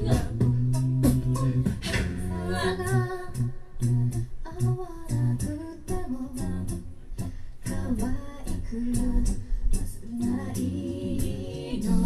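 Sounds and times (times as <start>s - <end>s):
backing vocal harmonies: 0.0s - 12.0s
beatboxed percussion: 0.0s - 12.0s
lead singing voice: 0.0s - 12.0s
sung bass line: 0.0s - 12.0s.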